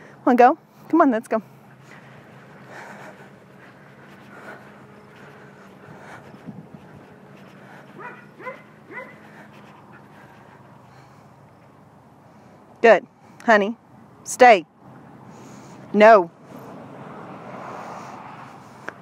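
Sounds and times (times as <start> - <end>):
dog whining: 8.0 - 9.4.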